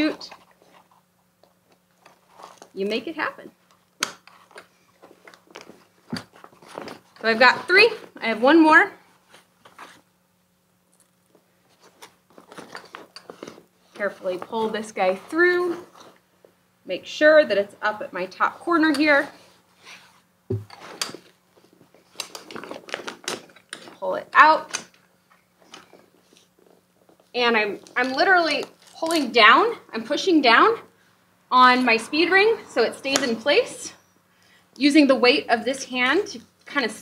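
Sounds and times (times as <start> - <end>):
reflective fabric rustling: 0.0 - 16.7
low steady hum: 0.0 - 37.0.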